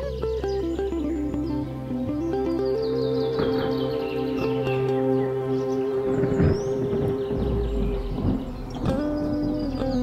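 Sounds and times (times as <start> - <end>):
programmed backing track: 0.0 - 10.0
synthesized electric guitar note: 0.0 - 10.0
low rumble: 3.0 - 10.0.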